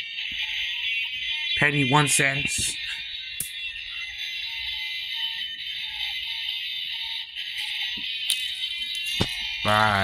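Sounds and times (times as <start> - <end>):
tinny electronic toy music: 0.0 - 10.0.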